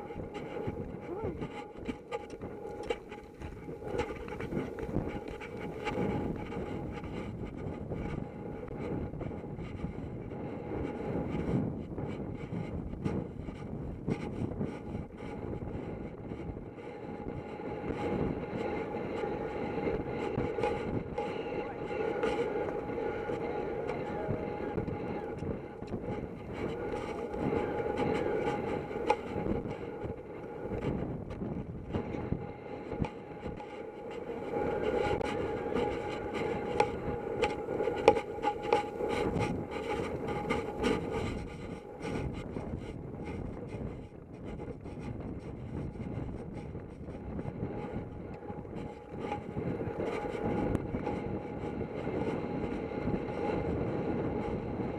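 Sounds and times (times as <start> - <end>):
wind rumbling on microphone: 0.0 - 54.9.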